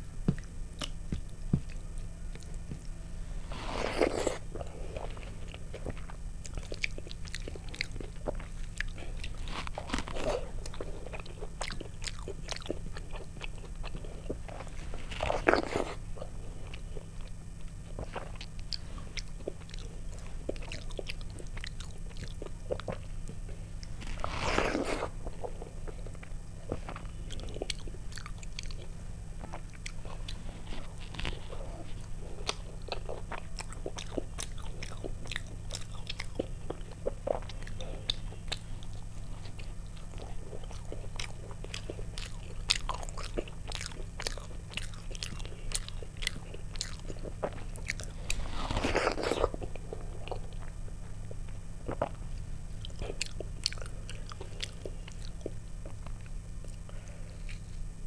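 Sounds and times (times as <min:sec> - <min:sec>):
steady low hum: 0:00.0 - 0:58.0
chewing with wet mouth clicks: 0:00.3 - 0:03.0, 0:04.0 - 0:24.0, 0:24.6 - 0:52.2, 0:52.8 - 0:57.8.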